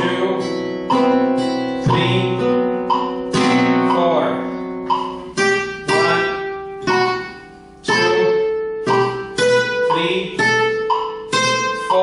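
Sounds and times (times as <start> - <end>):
guitar chords ringing: 0.0 - 12.0.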